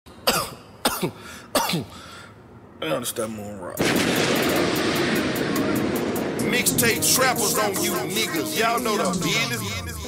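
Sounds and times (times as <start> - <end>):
person coughing: 0.2 - 1.9.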